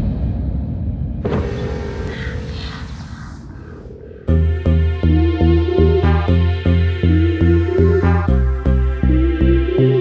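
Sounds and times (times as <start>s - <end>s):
low rumble: 0.0s - 7.8s
hiss: 1.3s - 4.2s.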